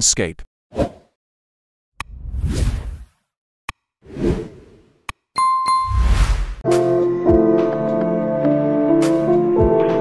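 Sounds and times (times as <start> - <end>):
music with sustained notes: 6.6 - 10.0.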